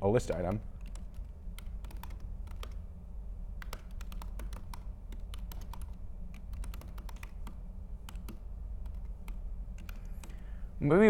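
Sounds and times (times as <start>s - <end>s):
low steady hum: 0.0s - 11.0s
laptop keyboard typing: 0.2s - 2.9s, 3.6s - 10.6s.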